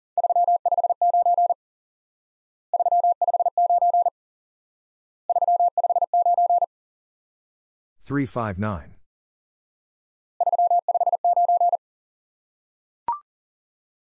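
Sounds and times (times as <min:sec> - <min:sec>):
morse code tone: 0:00.2 - 0:01.6, 0:02.8 - 0:04.1, 0:05.3 - 0:06.7, 0:10.4 - 0:11.8.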